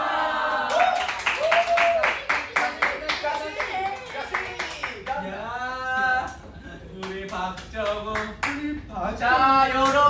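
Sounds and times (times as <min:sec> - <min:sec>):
people clapping: 0:00.0 - 0:05.3, 0:07.0 - 0:08.6, 0:09.8 - 0:10.0.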